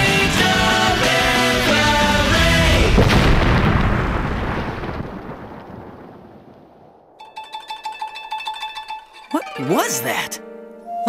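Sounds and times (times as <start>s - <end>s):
cartoon boom rumble: 2.8s - 7.2s
plucked string music cue: 7.2s - 11.0s.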